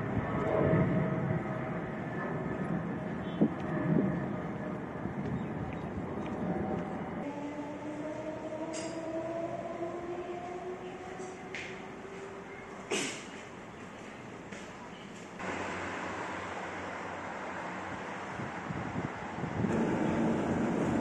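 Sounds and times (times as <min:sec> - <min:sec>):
train electric whine rising: 0:06.3 - 0:12.8, 0:19.4 - 0:21.0
rumbling noise: 0:18.9 - 0:21.0.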